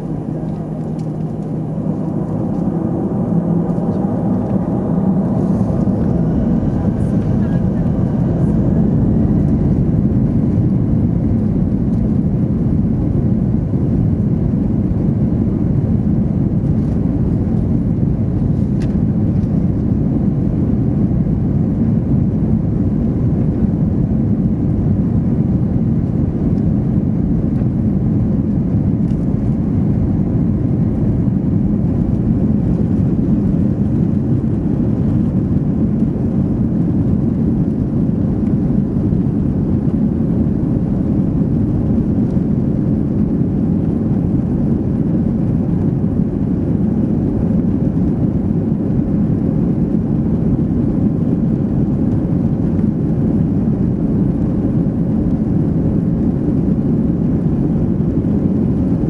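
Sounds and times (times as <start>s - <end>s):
jet engines heard inside cabin: 0.0s - 59.0s.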